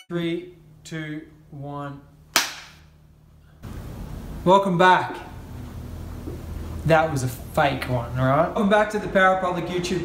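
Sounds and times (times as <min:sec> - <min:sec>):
sharp hand clap: 0:02.4 - 0:02.8.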